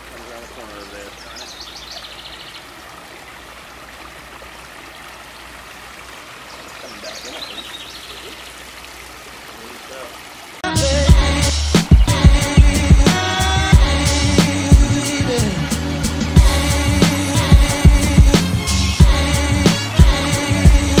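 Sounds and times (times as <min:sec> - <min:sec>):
water trickling over rocks: 0:00.0 - 0:10.7
hip-hop music: 0:10.6 - 0:21.0.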